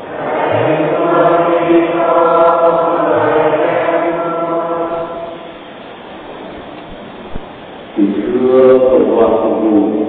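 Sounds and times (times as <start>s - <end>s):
choir chanting: 0.0s - 5.5s.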